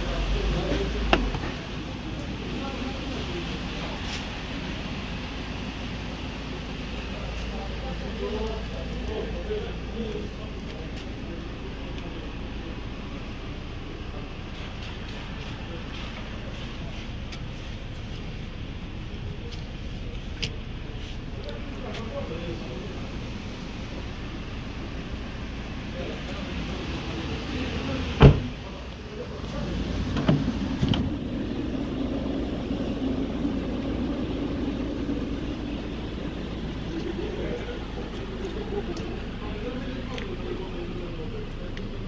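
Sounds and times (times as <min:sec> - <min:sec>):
car engine idling: 0:00.0 - 0:42.0
car cabin rumble: 0:28.1 - 0:42.0.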